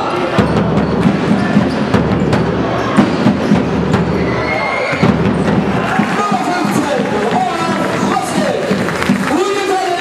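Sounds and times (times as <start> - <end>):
murmur of spectators: 0.0 - 10.0.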